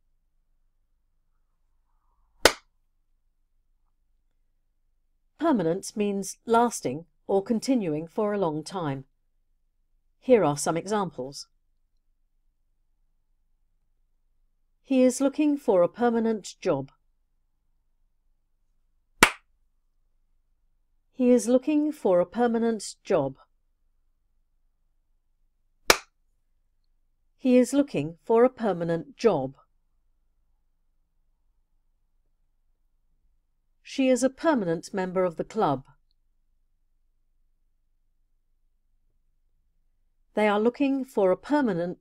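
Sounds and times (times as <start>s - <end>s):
sharp clap: 2.4s - 2.7s, 19.2s - 19.5s, 25.9s - 26.1s.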